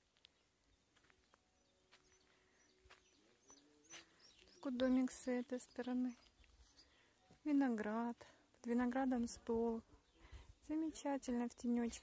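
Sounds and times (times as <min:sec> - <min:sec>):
faint birds calling: 0:00.0 - 0:08.0.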